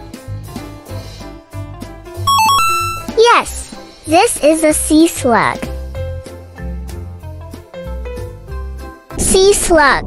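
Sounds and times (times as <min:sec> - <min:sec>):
bright electronic chime: 0:02.3 - 0:03.2
children's background music: 0:02.3 - 0:06.8.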